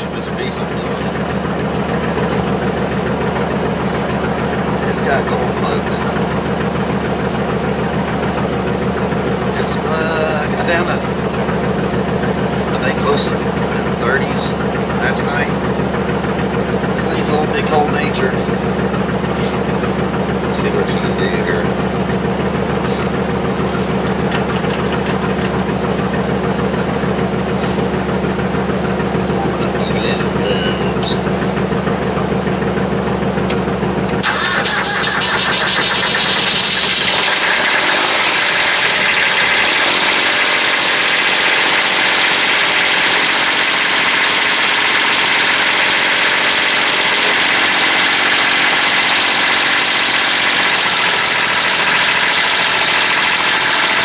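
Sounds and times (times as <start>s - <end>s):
diesel tractor engine starting: 0.0s - 54.0s
truck engine idling: 0.0s - 54.0s.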